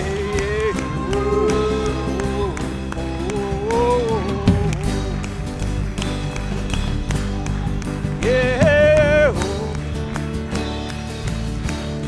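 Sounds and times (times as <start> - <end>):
electric bass: 0.0 - 12.0
guitar chords: 0.0 - 12.0
keyboard chords: 2.1 - 11.3
sharp percussive hits: 4.5 - 11.1.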